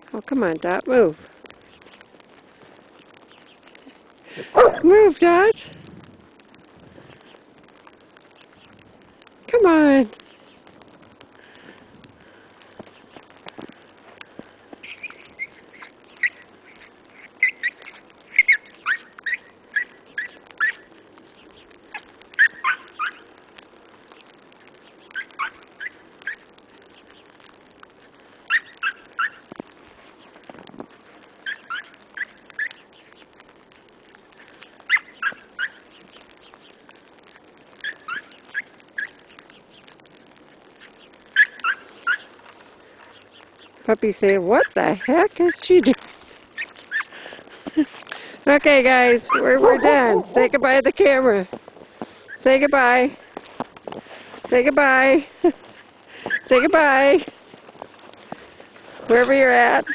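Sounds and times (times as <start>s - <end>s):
high-pitched animal calls: 14.8s - 20.9s, 21.9s - 23.3s, 25.0s - 26.5s, 28.5s - 29.4s, 31.4s - 33.1s, 37.8s - 39.2s, 40.8s - 42.3s, 49.1s - 50.6s.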